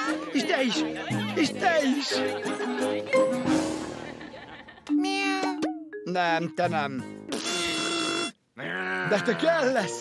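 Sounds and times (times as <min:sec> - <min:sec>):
cartoon music: 0:02.7 - 0:03.8.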